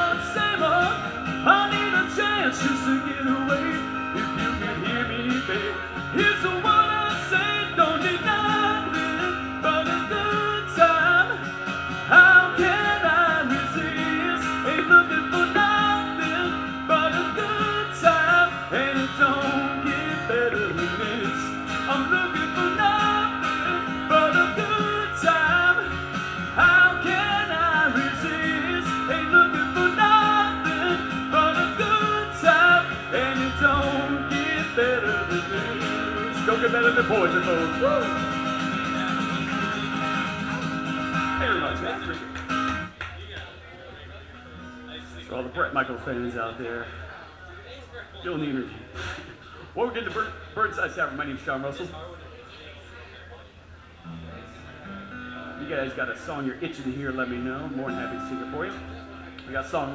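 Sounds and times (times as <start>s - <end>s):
country-rock song instrumental: 0.0s - 43.3s, 44.0s - 47.4s, 48.2s - 51.9s, 54.0s - 59.9s
guitar: 0.0s - 59.9s.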